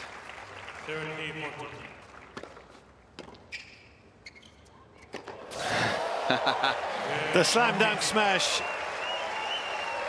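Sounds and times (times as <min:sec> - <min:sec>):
crowd applause and cheering: 0:05.4 - 0:10.0.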